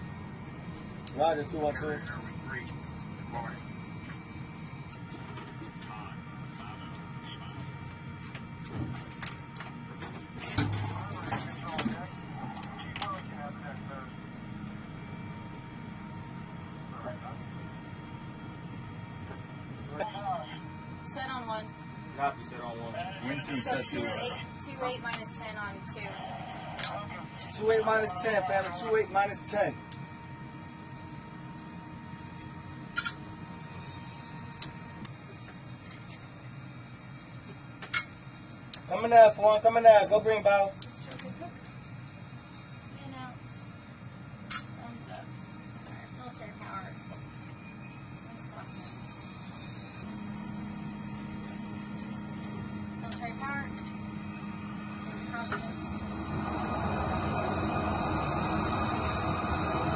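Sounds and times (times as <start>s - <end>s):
low hum: 0.0s - 59.9s
indistinct voices: 22.9s - 29.1s.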